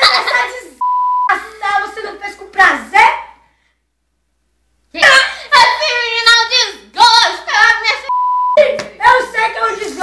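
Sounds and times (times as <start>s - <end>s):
speech: 4.9s - 10.0s.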